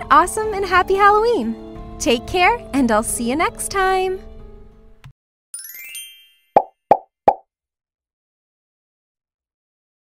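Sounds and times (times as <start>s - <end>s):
high chiming shimmer: 5.6s - 6.6s
cartoon plops: 6.6s - 7.4s.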